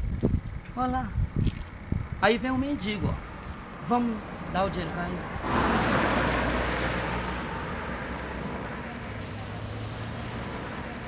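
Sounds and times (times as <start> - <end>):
car passing: 2.9 - 11.0.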